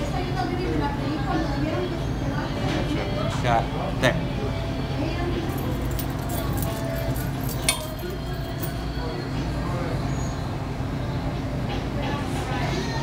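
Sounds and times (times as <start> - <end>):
faint background voices: 0.0 - 13.0
sharp clink: 6.0 - 8.8.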